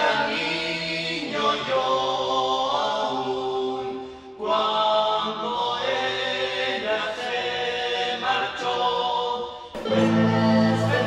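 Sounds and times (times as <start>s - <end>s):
voices singing in harmony: 0.0s - 11.0s
acoustic guitar: 9.8s - 11.0s.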